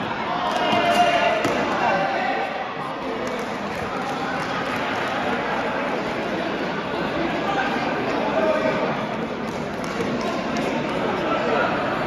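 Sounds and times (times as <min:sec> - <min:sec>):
players calling and shouting: 0:00.0 - 0:05.7.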